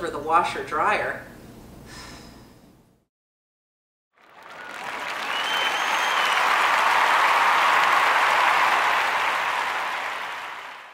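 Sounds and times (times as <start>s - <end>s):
audience applause: 4.2s - 10.9s
faint whistle: 5.2s - 6.5s.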